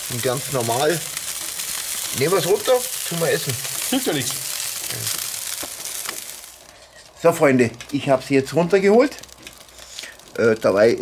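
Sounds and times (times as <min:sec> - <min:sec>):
chicken wings sizzling on grill: 0:00.0 - 0:11.0.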